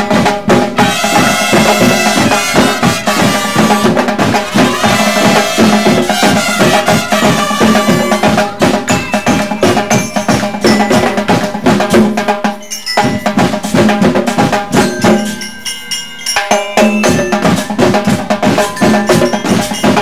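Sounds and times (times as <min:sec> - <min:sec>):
drums: 0:00.0 - 0:20.0
mallet percussion notes: 0:00.0 - 0:20.0.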